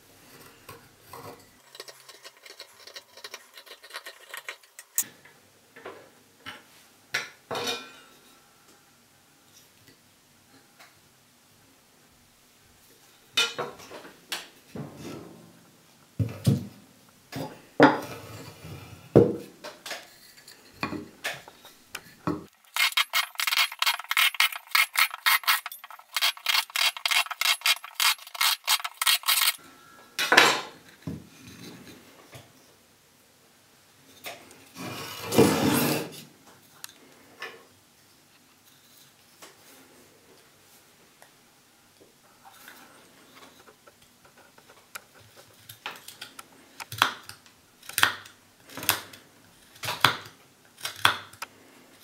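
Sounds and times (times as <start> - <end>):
hand saw cutting wood: 22.6 - 29.6
scrape on wood: 22.7 - 29.6, 34.8 - 36.2.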